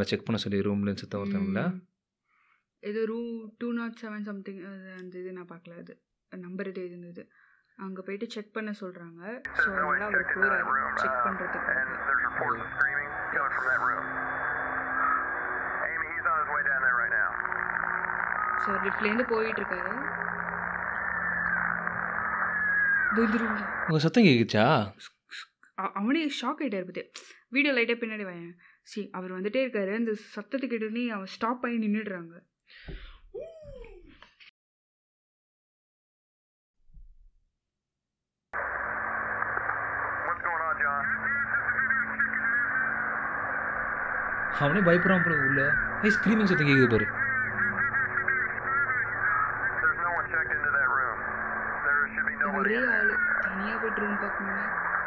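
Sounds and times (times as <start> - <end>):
voice on radio: 0.0 - 1.7, 9.5 - 17.8, 22.6 - 25.1, 38.6 - 55.0
radio static hiss: 9.5 - 24.6, 38.6 - 55.0.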